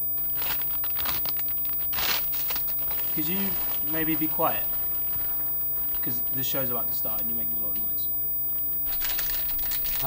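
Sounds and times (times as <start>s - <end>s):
television static hiss: 0.0s - 10.0s.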